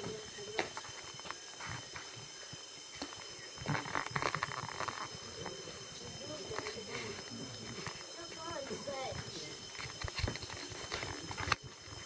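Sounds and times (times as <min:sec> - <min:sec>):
insect drone: 0:00.0 - 0:12.0.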